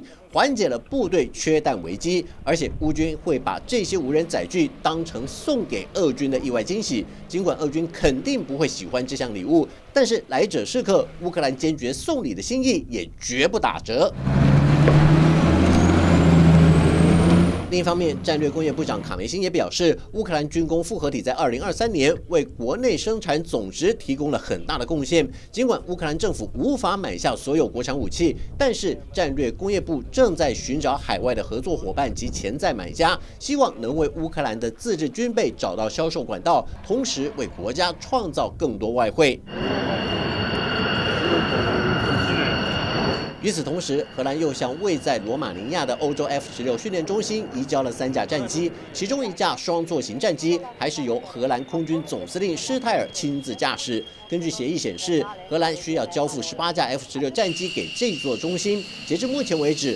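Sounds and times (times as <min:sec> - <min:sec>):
faint high whine: 0:01.3 - 0:12.6, 0:39.0 - 0:59.9
armoured vehicle engine driving past: 0:02.6 - 0:11.8, 0:14.0 - 0:19.3
jet engine rushing and whining: 0:14.2 - 0:19.0, 0:39.4 - 0:49.4.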